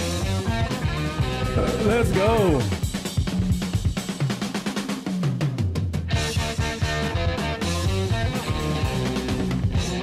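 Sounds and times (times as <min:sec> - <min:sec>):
rock drum break: 0:00.0 - 0:10.0
sustained low notes: 0:01.3 - 0:02.8.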